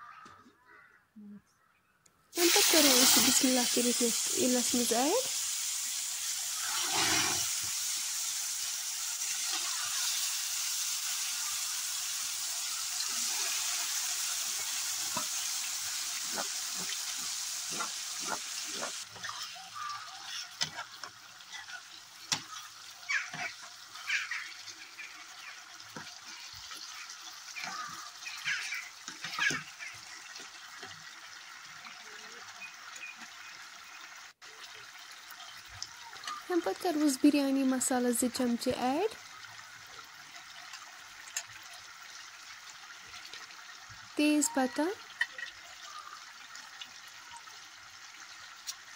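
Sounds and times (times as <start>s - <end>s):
chicken sizzling in hot oil: 2.3s - 48.9s
pot simmering: 2.4s - 48.9s
metal ladle scraping pot: 16.2s - 19.5s.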